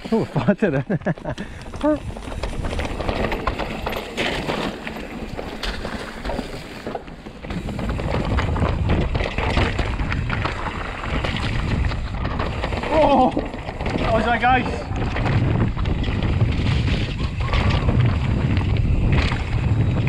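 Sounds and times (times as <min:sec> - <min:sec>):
bike rattling over rocks: 0:00.0 - 0:20.0
bike tyres crunching over stone: 0:00.0 - 0:20.0
wind buffeting microphone: 0:00.0 - 0:20.0.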